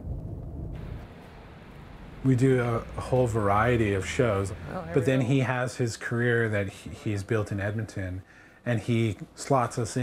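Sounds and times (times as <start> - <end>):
parking garage hiss and rumble: 0.8 - 10.0.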